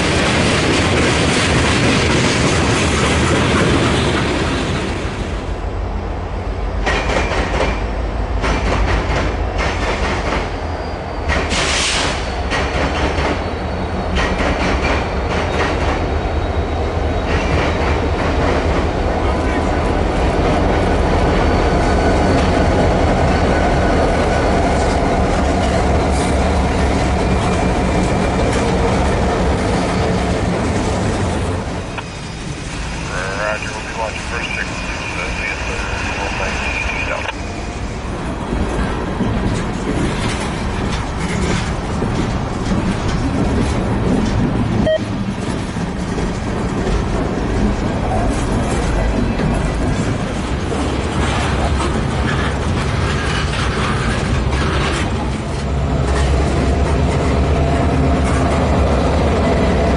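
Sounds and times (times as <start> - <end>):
diesel locomotive engines rumbling: 0.0 - 59.9
freight car wheels clattering on rails: 38.7 - 58.8.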